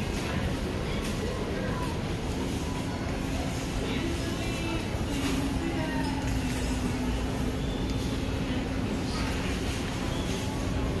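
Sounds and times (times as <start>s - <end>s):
store background rumble: 0.0s - 11.0s.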